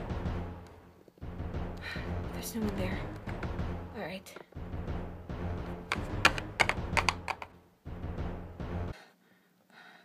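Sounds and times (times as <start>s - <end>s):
low background music: 0.0s - 9.4s.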